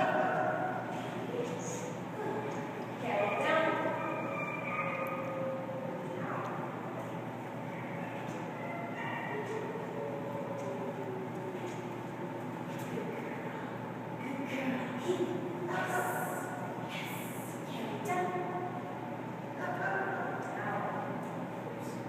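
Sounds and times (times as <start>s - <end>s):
room hum: 0.0s - 22.0s.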